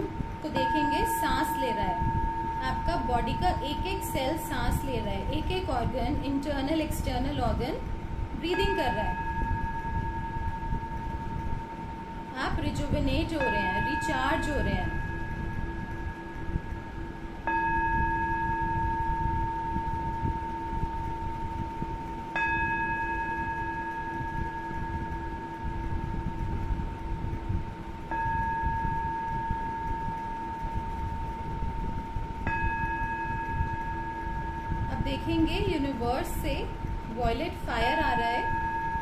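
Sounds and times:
low background rumble: 0.0s - 39.0s
singing bowl ringing: 0.0s - 39.0s.

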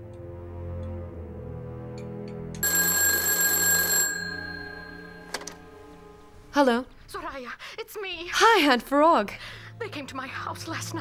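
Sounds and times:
soft film score music: 0.0s - 2.6s
telephone bell ringing: 2.6s - 6.0s.

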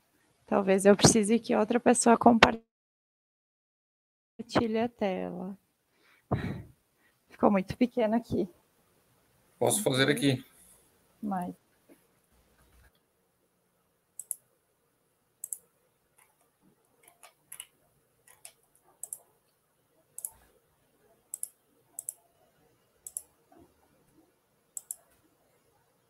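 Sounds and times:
computer mouse clicking: 14.2s - 14.4s, 15.4s - 19.3s, 20.2s - 20.5s, 21.3s - 22.2s, 23.0s - 23.3s, 24.8s - 25.2s.

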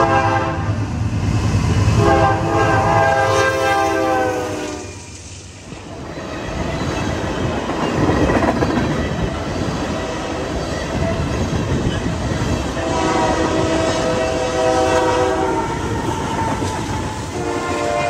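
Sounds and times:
locomotive horn blasts: 0.0s - 0.8s, 2.0s - 5.0s, 12.8s - 16.7s, 17.3s - 18.0s
train wheels clattering: 5.0s - 14.6s.

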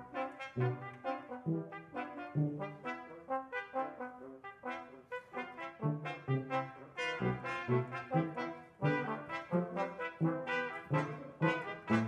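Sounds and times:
brass ensemble playing chords: 0.0s - 12.0s
tuba low notes: 0.0s - 12.0s.

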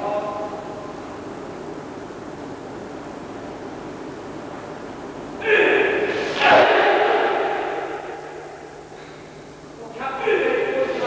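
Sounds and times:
steady low hum: 0.0s - 11.0s
echo of a loud shout: 5.4s - 8.6s.

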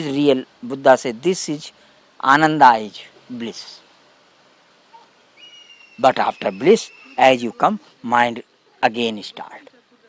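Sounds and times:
faint high whistled tone: 5.4s - 7.5s.

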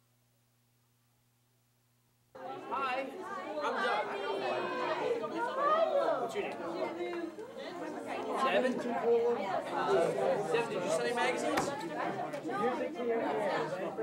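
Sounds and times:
people chatting: 2.4s - 14.0s.

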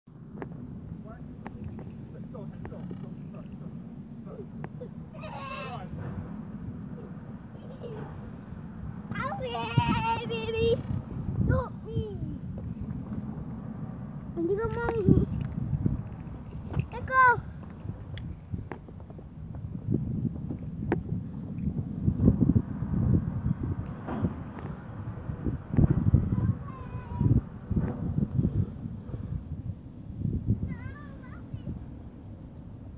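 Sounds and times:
wind buffeting microphone: 0.1s - 32.9s
child squealing: 5.2s - 5.9s.

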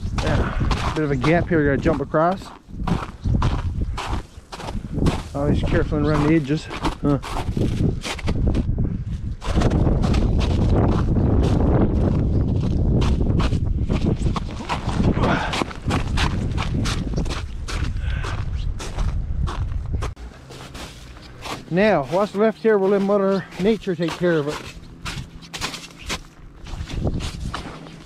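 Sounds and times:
wind rumbling on microphone: 0.0s - 22.2s, 23.6s - 28.0s
footsteps crunching on snow: 0.0s - 28.0s.

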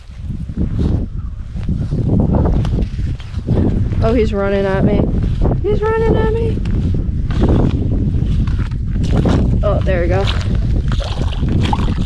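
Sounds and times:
low wind rumble on microphone: 0.0s - 12.0s.

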